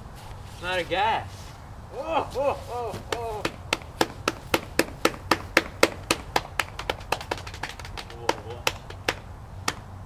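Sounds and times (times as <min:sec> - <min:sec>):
rhythmic hand claps: 0:03.1 - 0:09.8.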